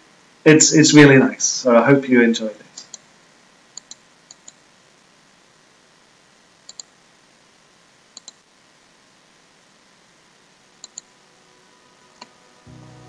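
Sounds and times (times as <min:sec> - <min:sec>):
faint room hiss: 0:00.0 - 0:13.0
computer mouse clicking: 0:02.8 - 0:03.1, 0:03.8 - 0:04.6, 0:06.7 - 0:06.9, 0:08.2 - 0:08.4, 0:10.8 - 0:11.1.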